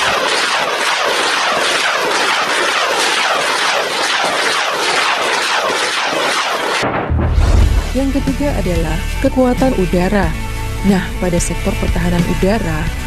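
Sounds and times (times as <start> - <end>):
rockets whooshing: 0.0 - 9.1.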